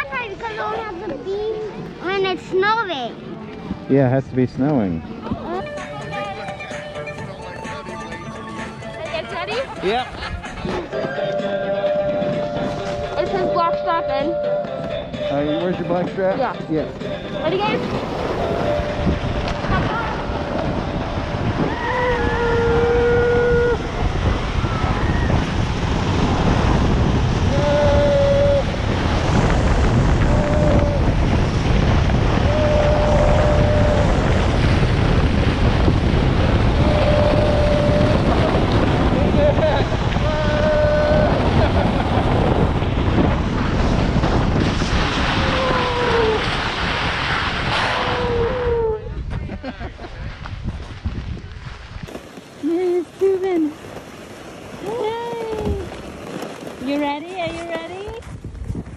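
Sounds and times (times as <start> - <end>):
wind rushing on microphone: 8.9 - 58.9
tube hissing on snow: 17.5 - 49.0.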